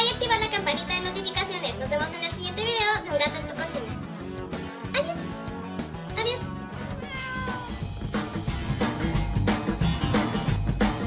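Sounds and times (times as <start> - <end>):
background music with drum beat: 0.0 - 11.0
cat meowing: 6.9 - 7.8.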